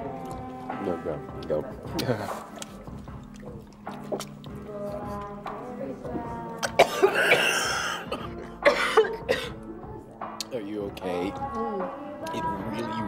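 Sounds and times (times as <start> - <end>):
background music: 0.0 - 13.0
man coughing and gagging: 6.6 - 9.6.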